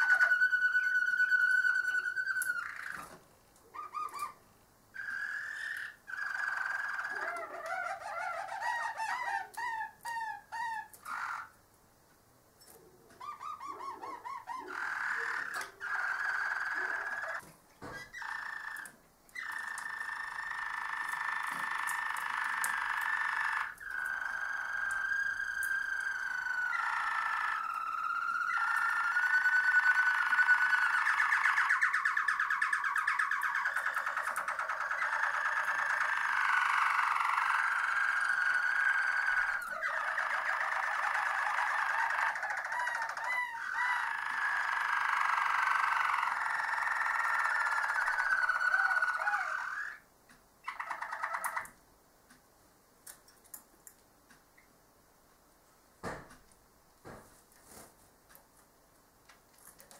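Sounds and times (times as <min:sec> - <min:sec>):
canary singing rolling trills: 0:00.0 - 0:11.6, 0:12.6 - 0:51.8.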